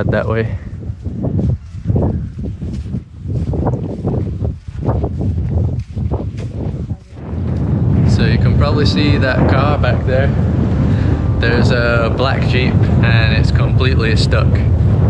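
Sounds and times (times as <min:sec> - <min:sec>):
wind buffeting microphone: 0:00.0 - 0:15.0
flip-flop footsteps on sand: 0:00.8 - 0:08.4.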